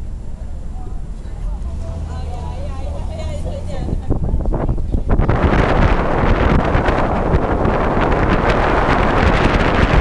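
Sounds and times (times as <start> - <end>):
wind buffeting microphone: 1.2 - 10.0.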